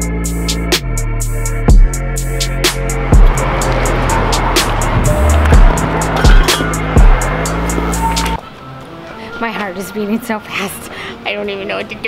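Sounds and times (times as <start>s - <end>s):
electronic music with booming kicks: 0.4s - 8.4s.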